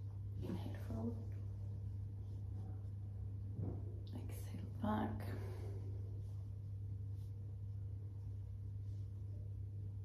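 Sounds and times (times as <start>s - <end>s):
steady low hum: 0.0s - 10.0s
woman breathing: 5.2s - 6.2s.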